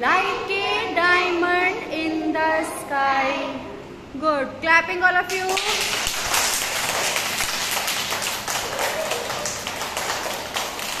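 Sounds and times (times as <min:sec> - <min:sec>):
children clapping: 0:05.3 - 0:11.0.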